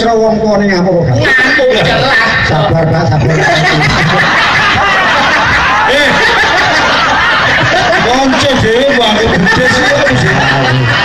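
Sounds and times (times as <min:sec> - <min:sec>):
audience laughing: 0:01.2 - 0:11.0.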